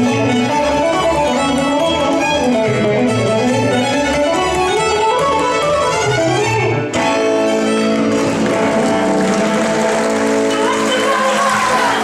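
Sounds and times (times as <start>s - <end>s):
fiddle guitar and bass chord: 0.0s - 10.7s
audience applauding: 8.0s - 12.0s.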